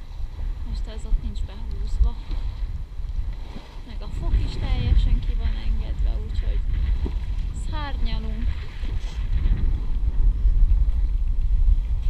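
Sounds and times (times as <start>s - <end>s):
water rushing along hull: 0.0s - 12.0s
wind buffeting microphone: 0.0s - 12.0s.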